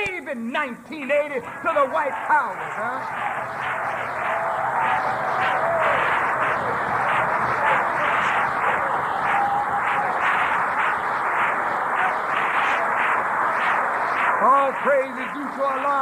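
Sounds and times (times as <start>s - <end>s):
audience applauding: 1.4s - 16.0s.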